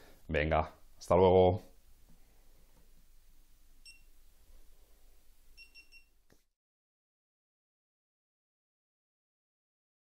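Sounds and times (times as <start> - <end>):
faint short electronic beeps: 5.6 - 6.1.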